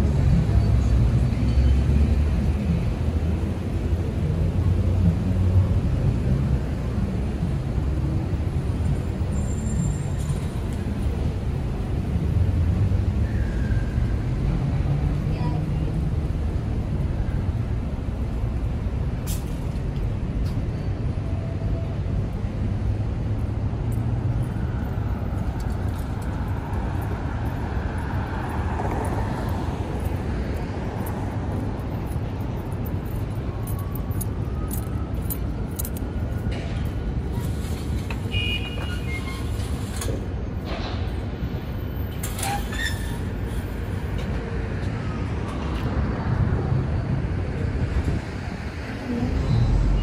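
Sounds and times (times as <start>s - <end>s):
rumble of passing cars: 0.0s - 50.0s.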